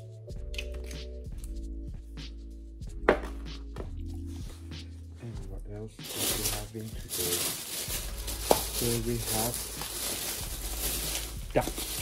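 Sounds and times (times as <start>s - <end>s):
background music sustained notes: 0.0s - 12.0s.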